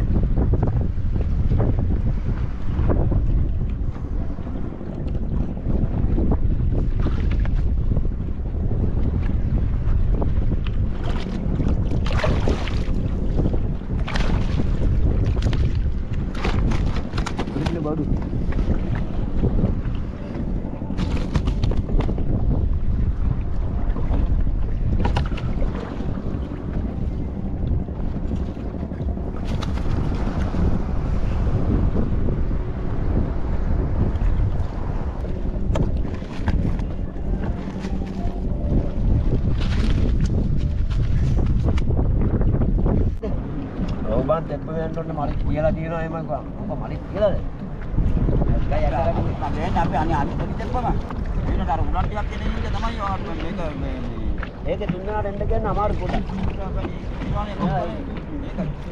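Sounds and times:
rushes of wind and water: 0:00.0 - 0:58.9
wind buffeting microphone: 0:00.0 - 0:58.9.

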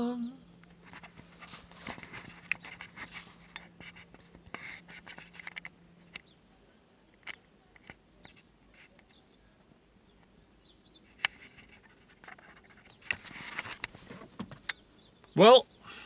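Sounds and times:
low steady hum: 0:00.0 - 0:16.0
camera handling clicks and scrapes: 0:00.7 - 0:06.2, 0:11.1 - 0:14.2.

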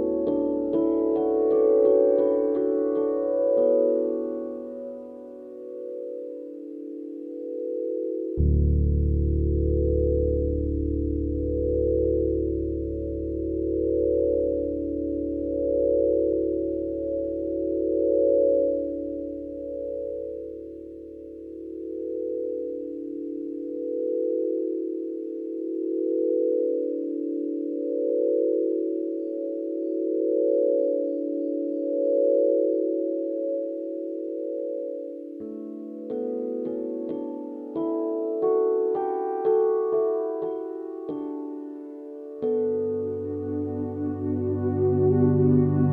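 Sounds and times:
ambient music held chord: 0:00.0 - 0:45.9
deep bass note: 0:08.4 - 0:11.4.

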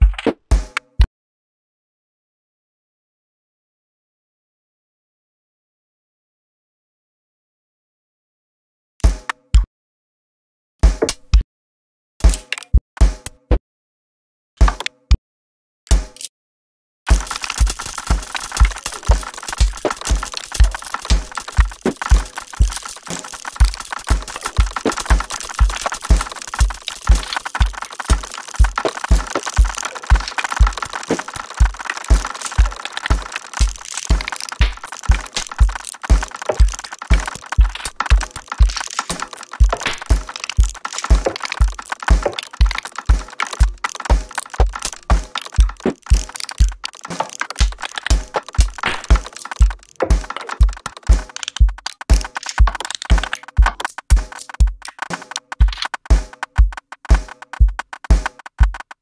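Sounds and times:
low thumping beat: 0:17.1 - 0:46.9, 0:47.6 - 0:59.0
experimental electronic music: 0:17.1 - 0:59.0
glitchy crackling clicks: 0:17.1 - 0:59.0.

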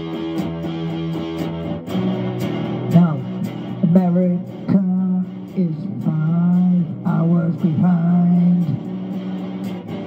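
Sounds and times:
electric guitar strumming chords: 0:00.0 - 0:10.0
man singing: 0:02.9 - 0:08.9.

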